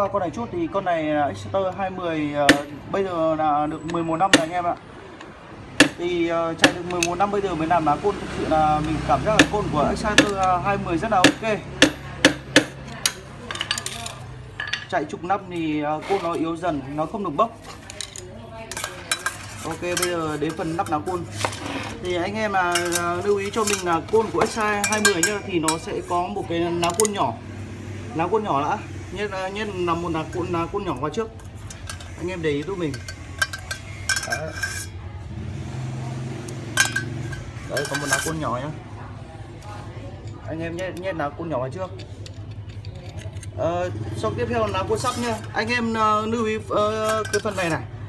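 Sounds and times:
sharp metal tap: 5.8 - 6.0, 11.2 - 13.2
small steel parts clinking: 11.3 - 14.9, 17.6 - 21.6, 22.6 - 25.9, 26.8 - 27.2, 31.4 - 35.0, 36.5 - 38.5, 42.0 - 43.6, 46.8 - 47.8.

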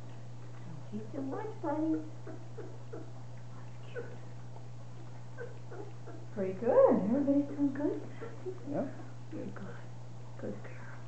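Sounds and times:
steady low hum: 0.0 - 11.0
puppies squeaking: 1.4 - 4.3, 5.0 - 8.7.

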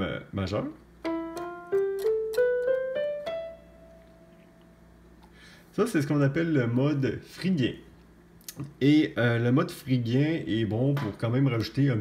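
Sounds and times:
electronic keyboard piano notes rising: 1.0 - 5.0.

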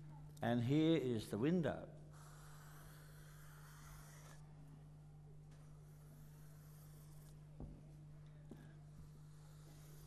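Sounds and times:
low electrical hum: 0.0 - 10.0
marker scratching on cardboard: 2.2 - 4.4, 5.5 - 7.4, 8.8 - 10.0.

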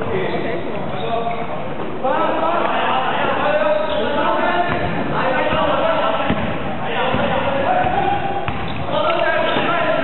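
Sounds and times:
basketball bouncing on floor: 4.7 - 9.7.

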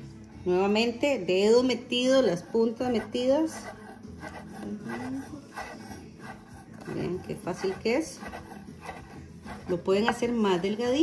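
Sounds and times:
knife slicing on wooden board: 2.4 - 10.8.

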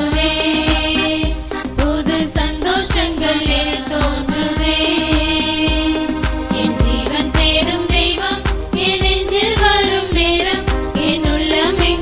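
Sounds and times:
steady low drum beat: 0.0 - 12.0.

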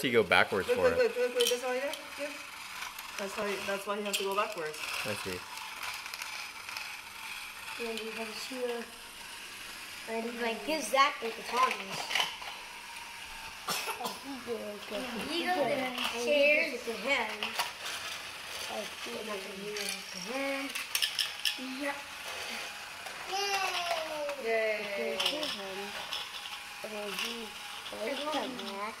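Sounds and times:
toy train engines whirring: 0.0 - 29.0.

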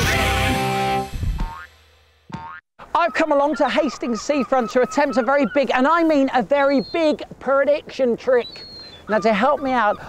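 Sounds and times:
cartoon boing effect: 1.4 - 1.7, 2.3 - 2.6.

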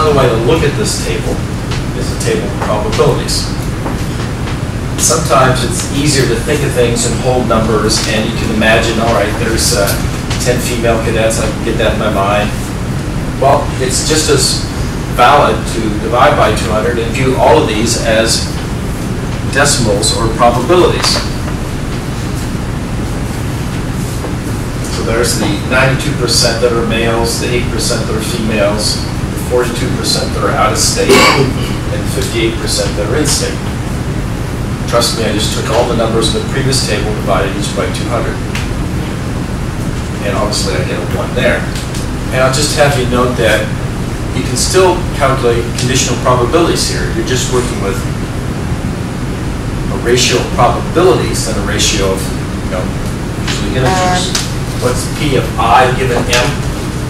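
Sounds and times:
even hiss: 13.4 - 18.6.

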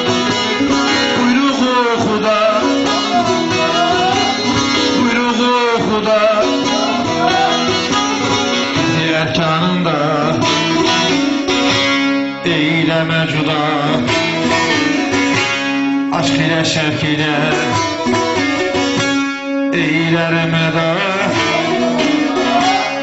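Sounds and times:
person singing: 0.0 - 18.8, 19.6 - 23.0
saz plucked and strummed: 0.0 - 23.0.

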